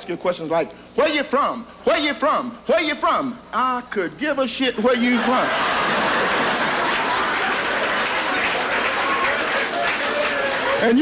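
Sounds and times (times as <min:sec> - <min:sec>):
audience laughing: 0:05.0 - 0:10.8
audience applauding: 0:05.7 - 0:11.0.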